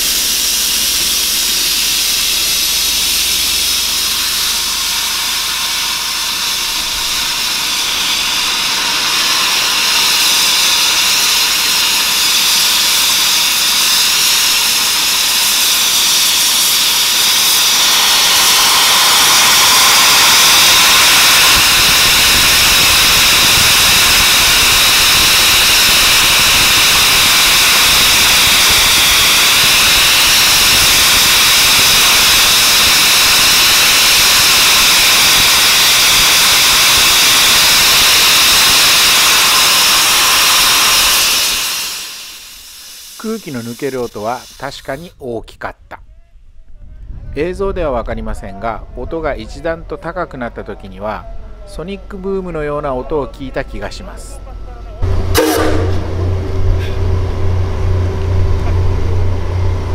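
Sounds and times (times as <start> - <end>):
compressed air hissing: 0.0 - 45.2, 55.0 - 59.2.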